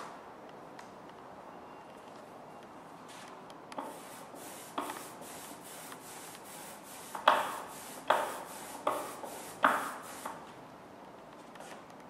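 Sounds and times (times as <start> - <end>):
rubber roller rolling through ink: 3.8 - 10.4.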